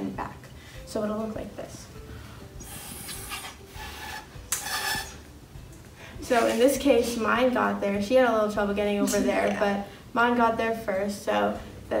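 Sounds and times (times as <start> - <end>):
air blown through straws: 2.3 - 5.3.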